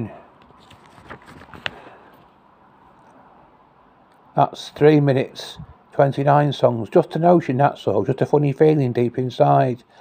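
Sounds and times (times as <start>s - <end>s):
paper pages rustling: 0.4s - 2.3s.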